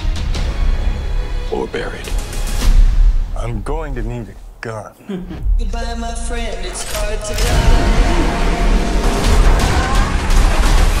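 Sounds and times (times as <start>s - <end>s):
loud music with heavy pulse: 7.3s - 11.0s.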